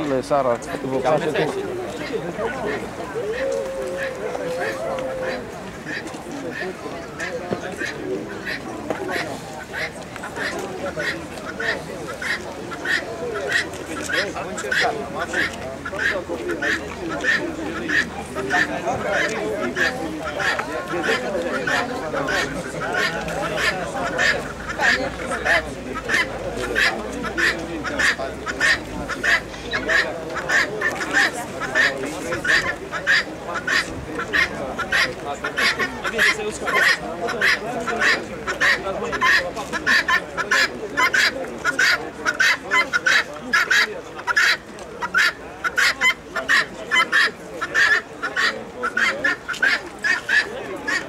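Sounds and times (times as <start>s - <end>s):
murmur of voices: 0.0s - 51.0s
fowl nasal calls: 1.9s - 51.0s.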